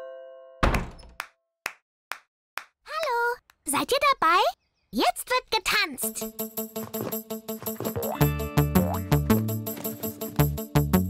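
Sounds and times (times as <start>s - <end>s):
child speaking: 2.9s - 6.2s.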